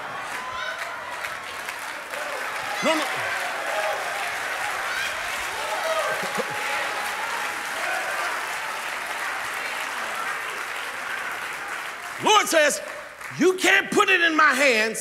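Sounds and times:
congregation applauding: 0.0 - 14.7.

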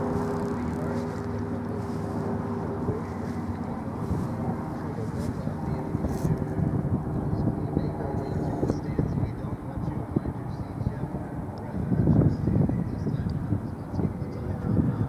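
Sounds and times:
engine hum: 0.0 - 15.0
faint indistinct voices: 0.0 - 15.0.

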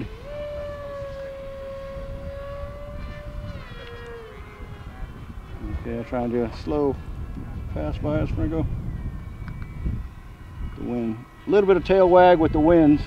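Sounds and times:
electric motor whining: 0.0 - 6.0
low rumble of wind: 0.0 - 13.0.

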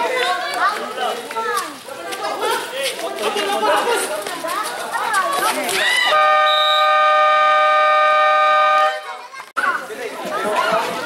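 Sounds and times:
people talking: 0.0 - 6.1, 8.9 - 11.0
scoreboard buzzer horn: 6.1 - 9.0.

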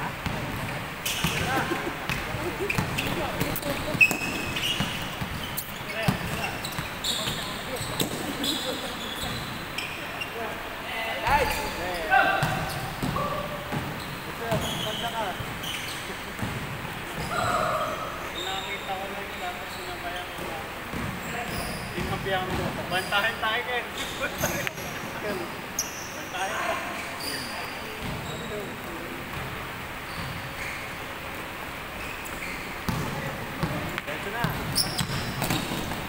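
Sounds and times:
basketball bouncing on gym floor: 0.2 - 8.3, 12.4 - 15.7, 16.4 - 17.8, 32.9 - 36.0
shoe squeaks: 1.0 - 10.5, 11.2 - 20.5, 21.1 - 25.0, 25.7 - 28.8, 30.0 - 31.1, 31.9 - 36.0
players shouting: 17.1 - 18.3.

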